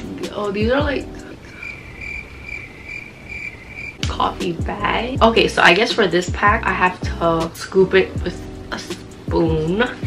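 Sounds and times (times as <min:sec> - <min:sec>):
high-pitched chirping trill: 0:01.5 - 0:04.0.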